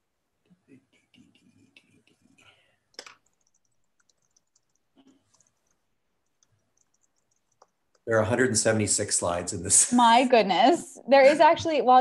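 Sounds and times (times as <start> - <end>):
computer mouse clicks: 0.5 - 8.1.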